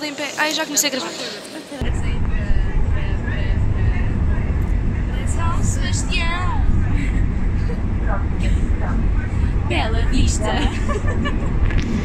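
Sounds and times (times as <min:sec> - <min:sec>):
faint voices: 0:00.0 - 0:11.2
train rumbling: 0:01.8 - 0:12.0.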